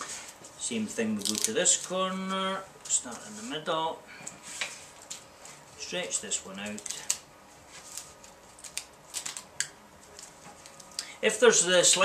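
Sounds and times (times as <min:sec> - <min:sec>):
plastic film crackling: 0:01.2 - 0:02.0, 0:06.0 - 0:11.2.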